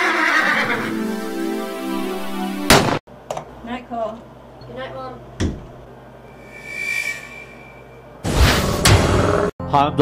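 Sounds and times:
horse whinnying: 0.0s - 0.9s
music with held chord: 0.8s - 2.7s.

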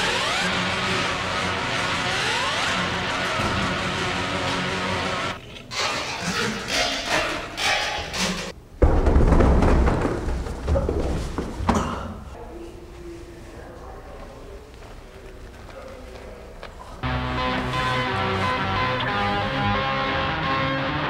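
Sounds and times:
person falling down carpeted stairs: 8.8s - 12.2s
background music: 17.0s - 21.0s.

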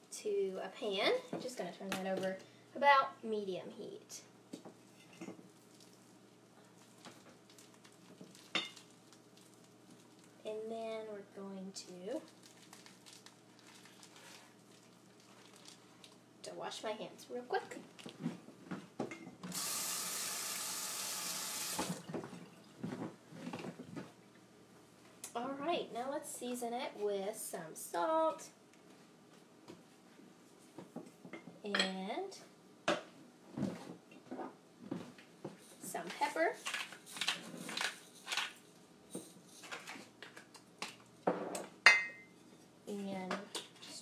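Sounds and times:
sink tap running: 19.5s - 22.0s
faint knocks and rustles: 22.0s - 24.2s, 28.8s - 31.6s, 32.9s - 37.8s.

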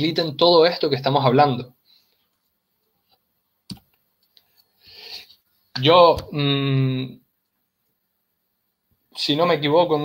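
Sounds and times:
soft breath: 4.5s - 5.5s.

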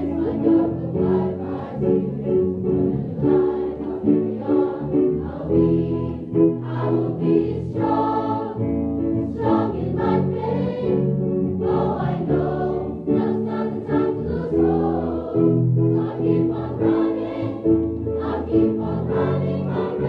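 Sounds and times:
large mixed choir singing: 0.0s - 20.0s.

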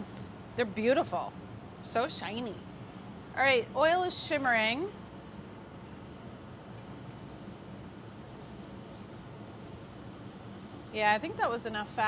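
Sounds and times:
bread sizzling in hot oil: 6.8s - 12.0s.

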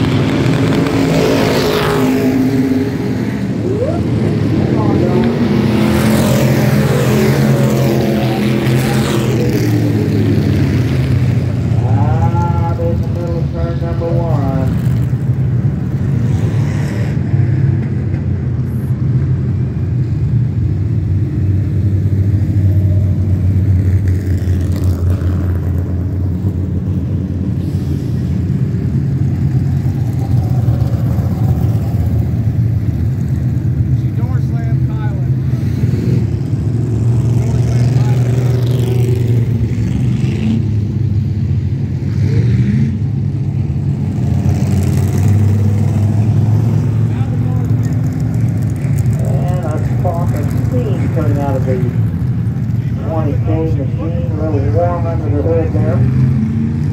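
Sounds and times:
engine revving: 0.0s - 18.1s, 21.2s - 56.9s
stock car engines racing: 0.0s - 56.9s.

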